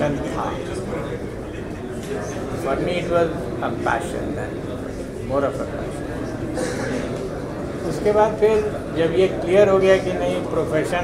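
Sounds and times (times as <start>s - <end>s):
man talking: 0.0s - 6.8s, 7.8s - 11.0s.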